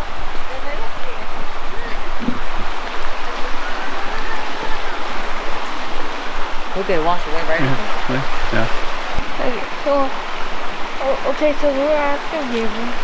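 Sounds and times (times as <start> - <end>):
water rushing over rocks: 0.0 - 13.0.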